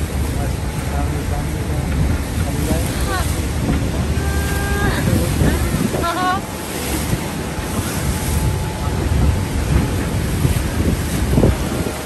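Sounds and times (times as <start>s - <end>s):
churning whitewater rushing: 0.0s - 12.0s
low rumble: 0.0s - 12.0s
wind buffeting microphone: 0.0s - 12.0s.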